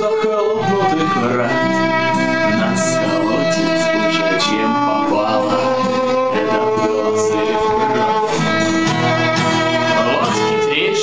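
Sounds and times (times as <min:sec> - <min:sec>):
guitar accompaniment: 0:00.0 - 0:11.0
violin bowed notes: 0:00.0 - 0:11.0.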